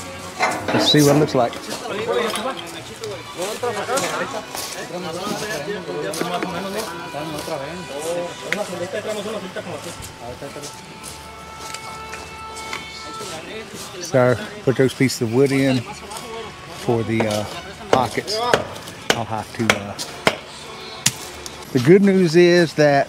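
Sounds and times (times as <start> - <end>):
indistinct voices: 0.0 - 4.5
background music: 0.0 - 23.0.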